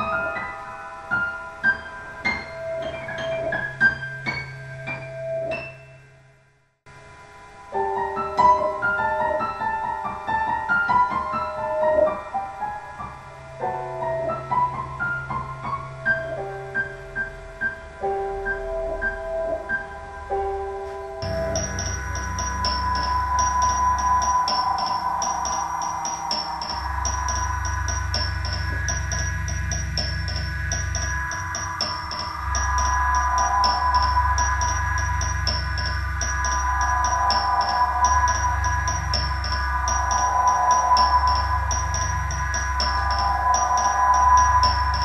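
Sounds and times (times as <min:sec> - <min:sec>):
low drone: 0:18.7 - 0:45.0
held electronic tones: 0:21.2 - 0:45.0.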